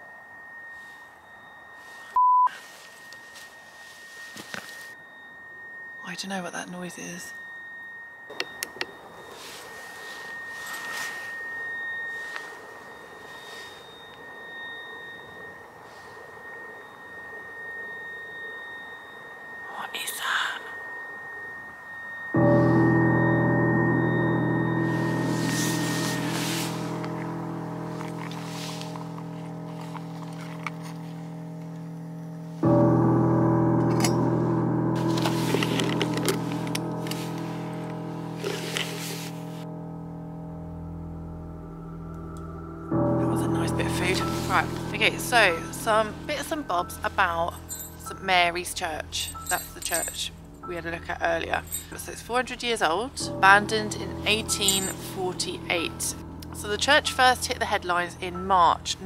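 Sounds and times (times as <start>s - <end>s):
deep sustained music chord: 0.0s - 59.0s
high-pitched electrical whine: 0.0s - 59.0s.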